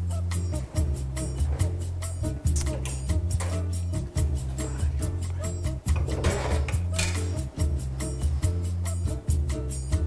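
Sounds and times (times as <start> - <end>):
music with repeating bass beat: 0.0 - 10.0.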